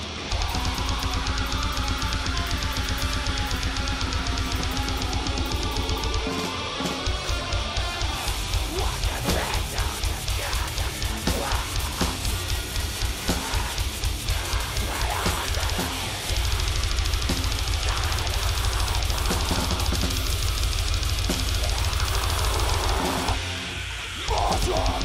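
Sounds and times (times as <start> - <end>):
very fast drumming: 0.0 - 23.6, 24.2 - 25.0
extreme metal band playing: 0.0 - 25.0
vocals into microphone: 0.3 - 20.3, 24.1 - 25.0.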